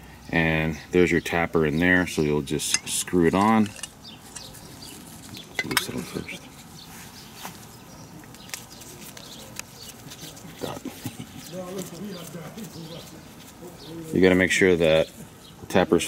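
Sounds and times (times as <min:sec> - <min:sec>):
metal tapper clicks and clinks: 0:02.6 - 0:04.6.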